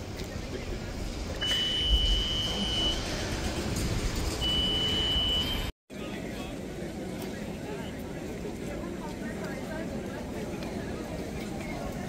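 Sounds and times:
high electronic warning beeps: 0:01.4 - 0:03.1, 0:04.4 - 0:05.7
crowd murmur: 0:05.9 - 0:12.0.

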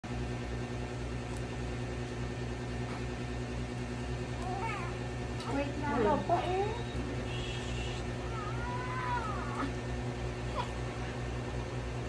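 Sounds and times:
steady low hum: 0:00.0 - 0:12.0
newborn baby crying: 0:08.2 - 0:09.8.

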